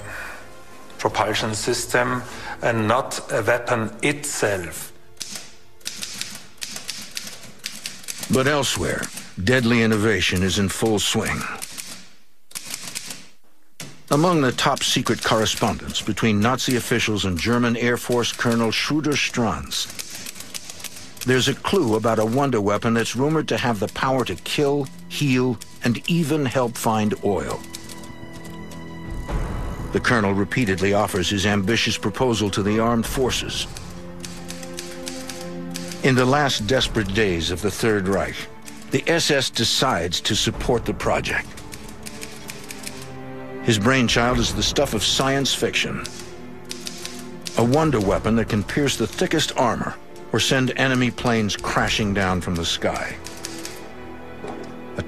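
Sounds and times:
background music with held notes: 0.0s - 11.5s, 14.1s - 55.0s
typewriter key clacks: 5.2s - 10.6s, 11.6s - 16.9s, 17.5s - 26.2s, 52.5s - 53.8s
typewriter typebars clacking: 5.2s - 28.6s, 33.1s - 39.8s, 40.4s - 43.1s, 44.2s - 49.8s, 50.4s - 53.8s.

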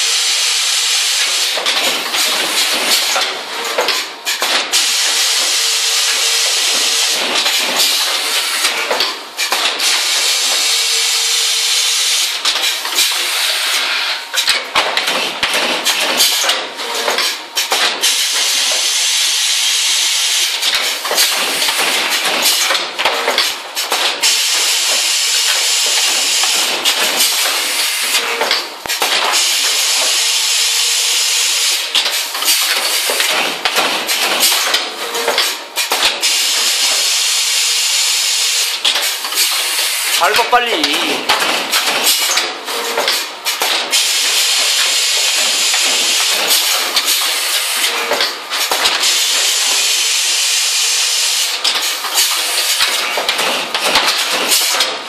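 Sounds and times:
machine clacking and knocking: 1.2s - 13.6s, 14.3s - 19.0s, 20.5s - 30.4s, 31.6s - 37.9s, 38.5s - 50.0s, 51.3s - 55.0s.

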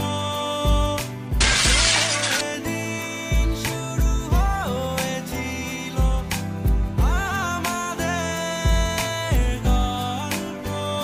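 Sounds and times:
background music: 0.0s - 11.0s
phone smashing on tiled floor: 1.4s - 2.6s.

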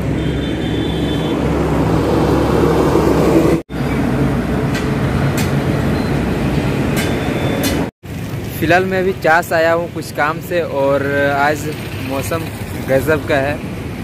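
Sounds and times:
lorry passing: 0.0s - 6.9s
motorcycles passing: 0.0s - 6.9s, 8.1s - 14.0s
traffic rumble: 0.0s - 14.0s.

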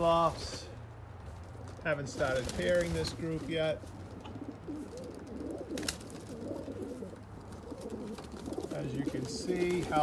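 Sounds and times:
pigeons cooing: 2.6s - 10.0s.

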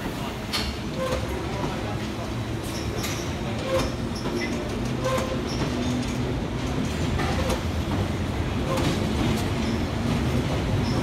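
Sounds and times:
train rumble and motor hum: 0.0s - 11.0s.

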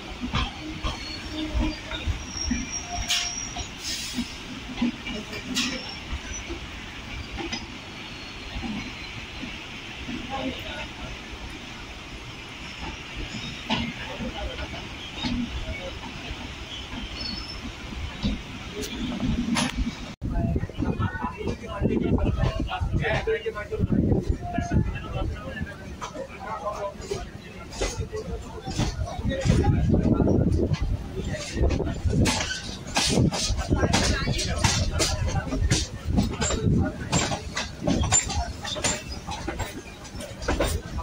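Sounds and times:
sharp clatters of train: 0.0s - 41.0s
train wheels rumbling on rail: 0.0s - 41.0s
high wheel squeals: 0.4s - 4.4s, 5.1s - 9.4s, 12.6s - 19.3s
train wheels thudding over joints: 26.0s - 41.0s.

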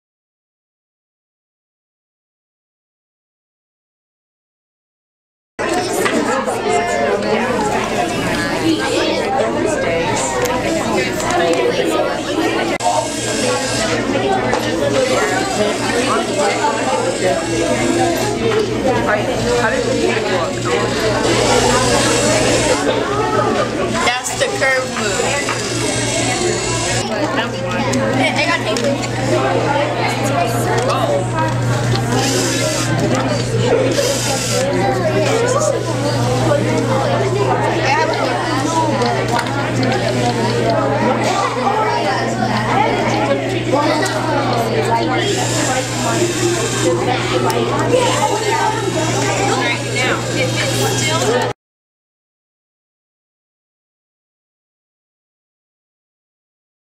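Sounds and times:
children chattering: 5.6s - 51.6s.

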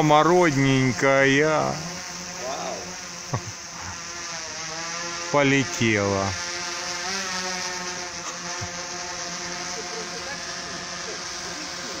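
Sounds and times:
drone propellers buzzing: 0.0s - 12.0s.

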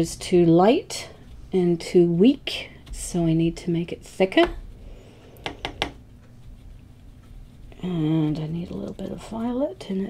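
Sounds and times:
paintbrush scrubbing on palette: 3.1s - 9.6s.

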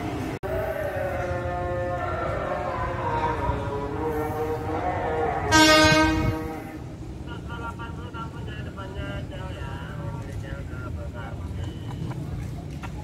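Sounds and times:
low rumble of train: 0.0s - 13.0s
voices: 0.1s - 13.0s
train horn blast: 4.1s - 6.9s.

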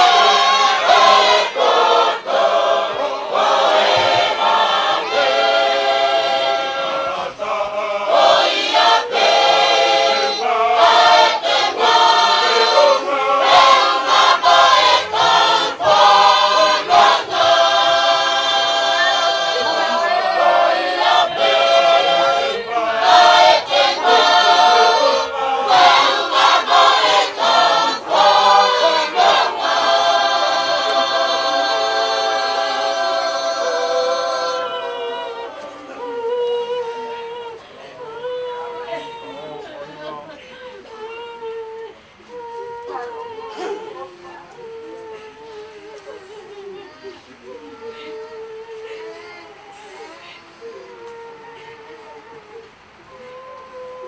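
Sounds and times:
choir singing: 0.0s - 40.4s.

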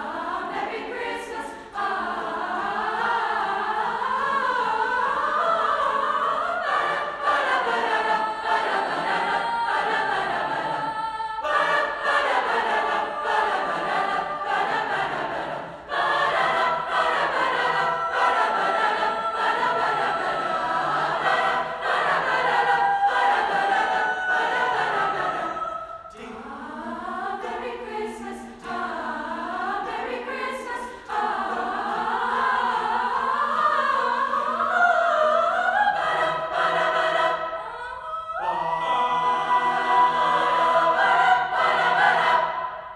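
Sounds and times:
mixed chorus singing: 0.0s - 42.9s.

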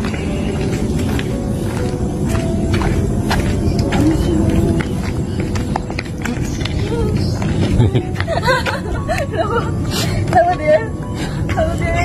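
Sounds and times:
footsteps on pavement: 0.0s - 12.0s
outdoor background noise: 0.0s - 12.0s.

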